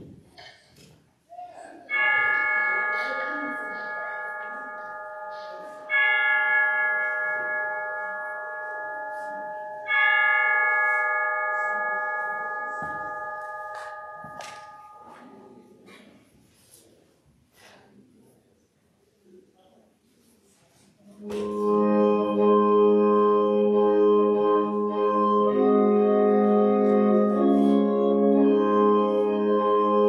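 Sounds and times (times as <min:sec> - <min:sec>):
bell ringing: 0:01.9 - 0:15.6.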